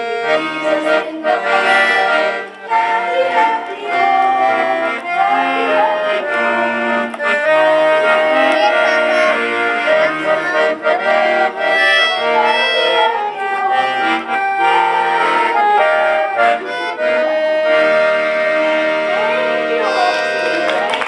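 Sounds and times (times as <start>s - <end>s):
accordion duet: 0.0s - 21.0s.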